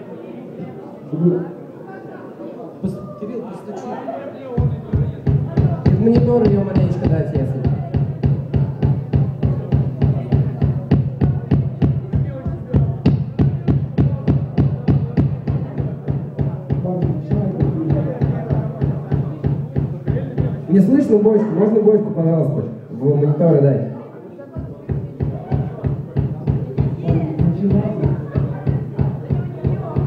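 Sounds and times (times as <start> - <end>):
kick drum hits: 4.6 - 20.6, 24.6 - 30.0.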